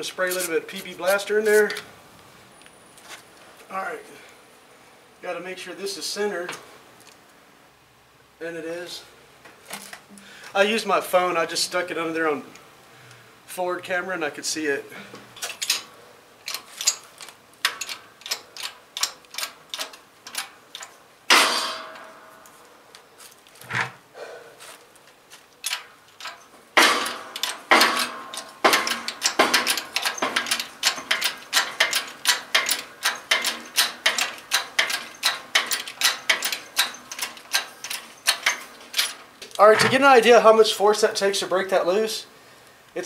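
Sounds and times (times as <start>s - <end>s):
loud metal crack with ringing: 21.3s - 22.5s, 26.8s - 38.6s
hydraulic press clicking: 25.7s - 39.2s.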